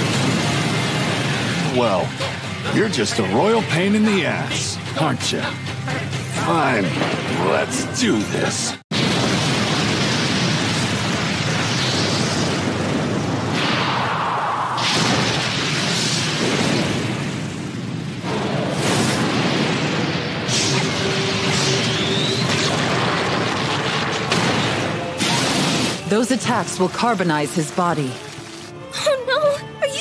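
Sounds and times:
loud blast of punch noise: 0:08.9 - 0:26.1
booming impacts: 0:08.9 - 0:26.2.

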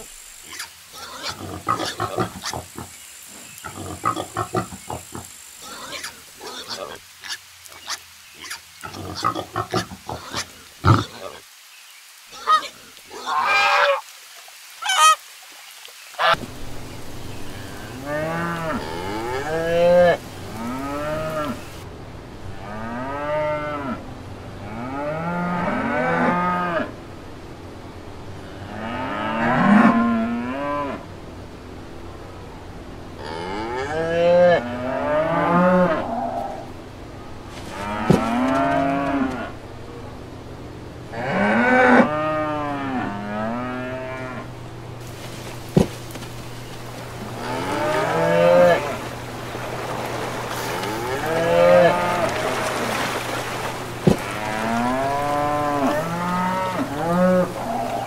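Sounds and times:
pig squealing: 0:00.5 - 0:02.9, 0:03.6 - 0:11.4, 0:12.3 - 0:14.0
cattle mooing: 0:17.6 - 0:21.8, 0:37.7 - 0:39.6, 0:41.1 - 0:44.5, 0:47.2 - 0:49.1, 0:50.5 - 0:53.1, 0:54.0 - 0:58.0.

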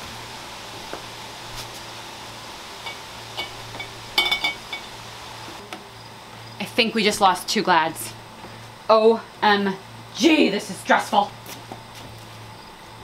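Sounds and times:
glass vases clinking together: 0:03.4 - 0:04.9.

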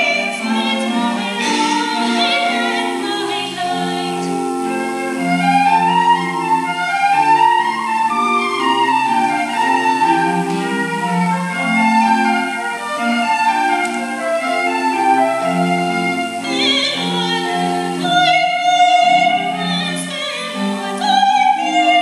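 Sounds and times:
choir music through speakers: 0:00.0 - 0:22.0.

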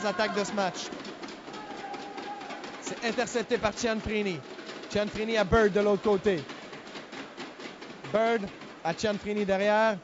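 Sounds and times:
ice hockey arena ambience: 0:00.0 - 0:10.0.

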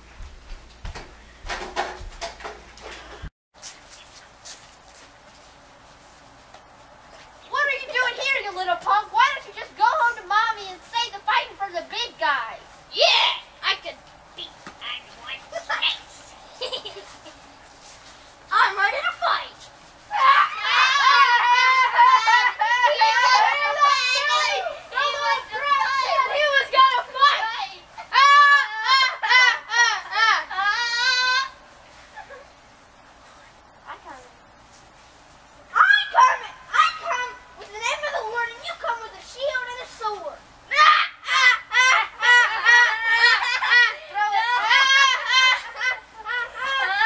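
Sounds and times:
child talking: 0:07.5 - 0:16.3, 0:18.5 - 0:19.6, 0:22.5 - 0:29.2, 0:33.9 - 0:34.4, 0:35.8 - 0:40.9
child laughing loudly: 0:16.6 - 0:17.4, 0:40.8 - 0:47.0.

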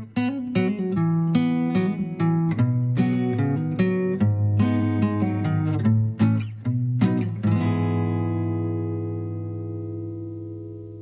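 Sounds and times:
strummed guitar chord ringing: 0:00.0 - 0:11.0.

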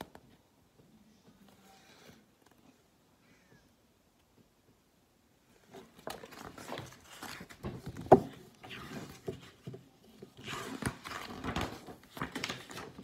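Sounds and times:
paper book rustling and knocking: 0:05.6 - 0:13.0.

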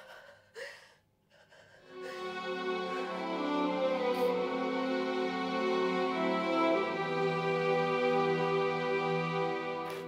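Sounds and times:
person gasping: 0:00.0 - 0:02.6
soft dramatic music: 0:01.8 - 0:10.0.

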